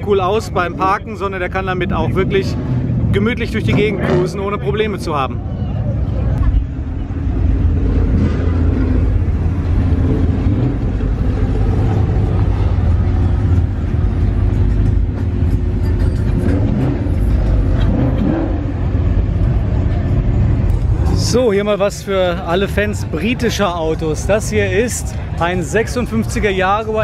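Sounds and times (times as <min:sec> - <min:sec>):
car engines deep exhaust rumble: 0:00.0 - 0:27.0.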